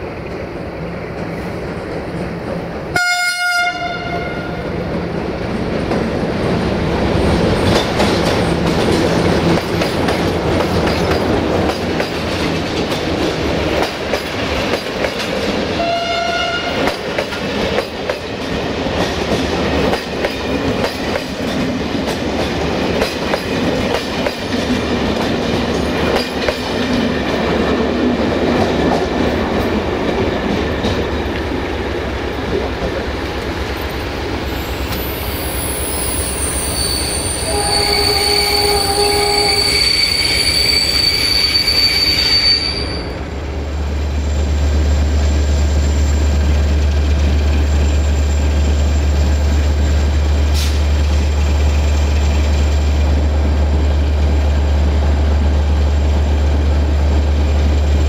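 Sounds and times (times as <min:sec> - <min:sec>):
locomotive horn blasts: 0:02.9 - 0:04.6, 0:15.8 - 0:16.9, 0:37.4 - 0:40.3
train wheels clattering over rail joints: 0:07.5 - 0:15.7, 0:16.8 - 0:31.5.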